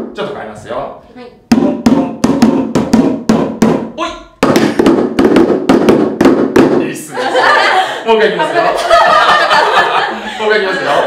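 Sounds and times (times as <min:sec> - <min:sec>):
homemade drums struck with bottles: 0:01.5 - 0:07.0.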